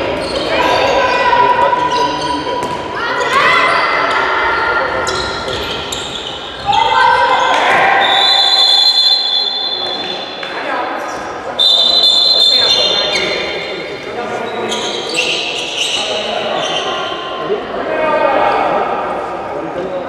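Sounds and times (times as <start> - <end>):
players and spectators calling out: 0.0 - 20.0.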